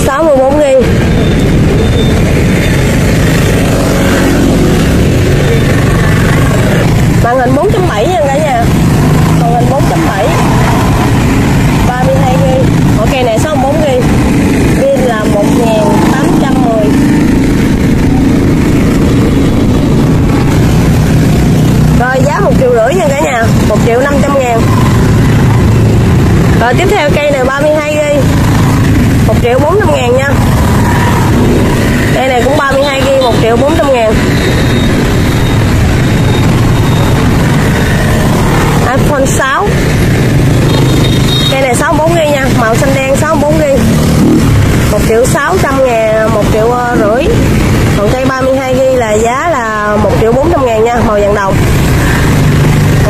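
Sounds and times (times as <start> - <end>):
indistinct voices: 2.0 - 20.6, 21.2 - 40.0, 41.5 - 52.1.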